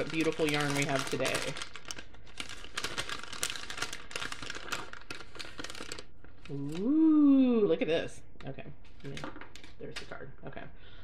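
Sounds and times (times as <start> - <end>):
crinkly packaging being opened: 0.0 - 6.9.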